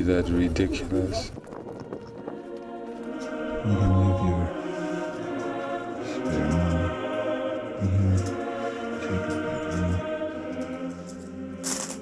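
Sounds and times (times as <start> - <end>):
choir singing a chant: 2.0 - 12.0.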